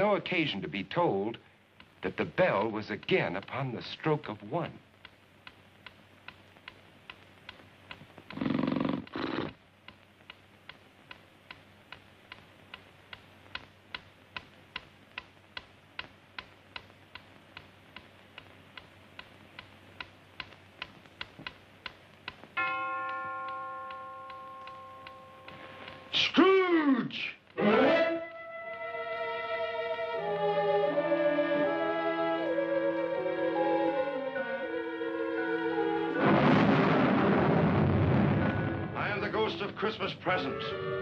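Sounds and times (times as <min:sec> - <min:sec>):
clock ticking: 0:01.8 - 0:03.7, 0:09.8 - 0:26.3
clock chime: 0:22.6 - 0:26.2.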